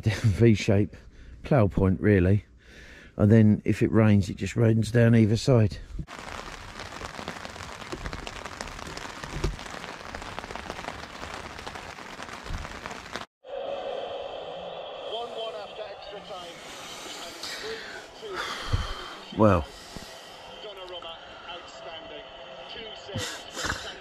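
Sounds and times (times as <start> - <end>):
rain pattering on tarp: 6.0 - 13.3, 23.2 - 24.0.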